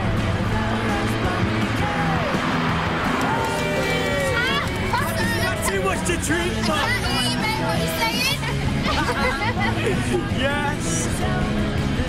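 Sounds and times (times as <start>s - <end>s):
dramatic music: 0.0s - 10.6s
people shouting: 0.6s - 8.6s.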